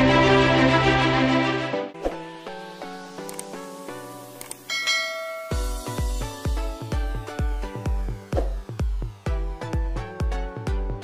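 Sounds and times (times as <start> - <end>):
electronic background music: 0.0 - 11.0
notification bell chime: 4.7 - 6.1.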